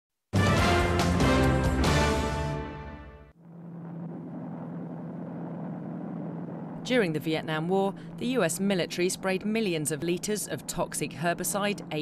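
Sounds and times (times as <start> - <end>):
aircraft engines droning: 3.3 - 12.0
constant low hum: 3.3 - 12.0.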